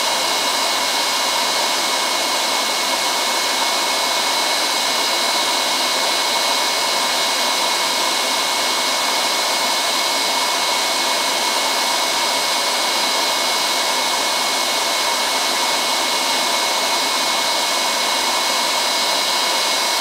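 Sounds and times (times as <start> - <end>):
vacuum cleaner whining: 0.0 - 20.0.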